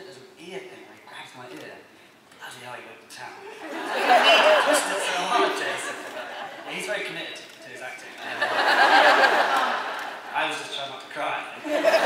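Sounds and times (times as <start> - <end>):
crowd noise: 3.6 - 10.8.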